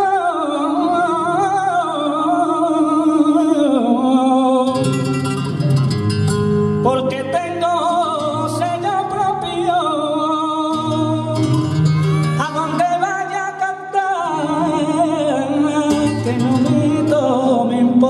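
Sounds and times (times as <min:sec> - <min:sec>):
flamenco guitar: 0:00.0 - 0:18.0
man singing flamenco: 0:00.0 - 0:18.0.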